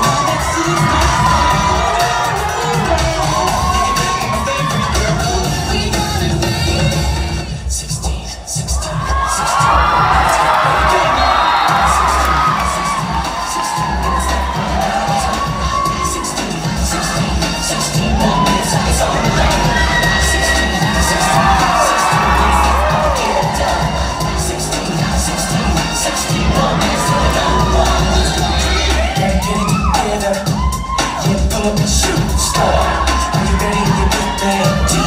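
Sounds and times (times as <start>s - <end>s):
audience cheering and shouting: 0.0s - 35.0s
dance music with bass beat: 0.0s - 35.0s.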